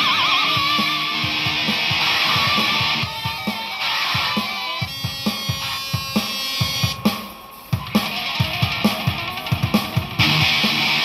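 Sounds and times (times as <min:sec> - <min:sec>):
electric guitar: 0:00.0 - 0:11.0
programmed drum beat: 0:00.0 - 0:11.0.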